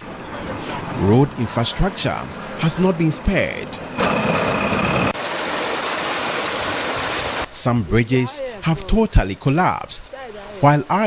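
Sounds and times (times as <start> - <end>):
water rushing through culvert: 5.0 - 11.0.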